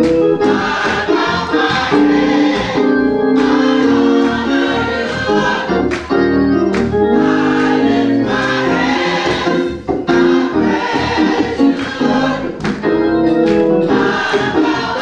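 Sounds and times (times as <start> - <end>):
church choir singing gospel: 0.0 - 15.0
organ accompaniment: 0.0 - 15.0.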